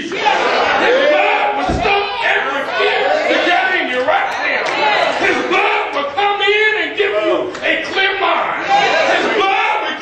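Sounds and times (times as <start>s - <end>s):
congregation calling back: 0.0s - 10.0s
man preaching into a microphone: 0.0s - 10.0s.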